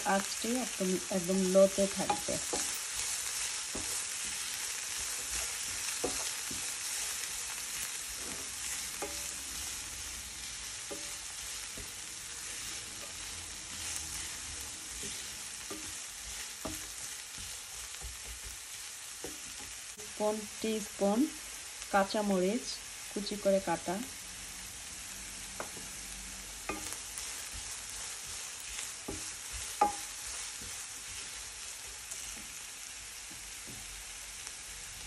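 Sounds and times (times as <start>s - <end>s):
vegetables sizzling in oil: 0.0s - 35.0s
spatula tapping and scraping pan: 1.3s - 20.2s, 25.5s - 32.6s.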